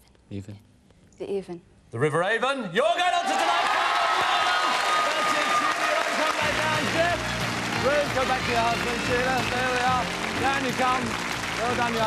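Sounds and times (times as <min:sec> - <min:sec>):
studio audience applauding: 0:03.2 - 0:12.0.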